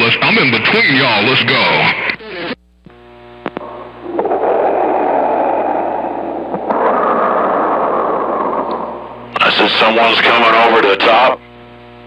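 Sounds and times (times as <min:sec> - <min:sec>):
radio low buzz: 0:00.0 - 0:12.0
radio rushing noise: 0:03.6 - 0:11.4.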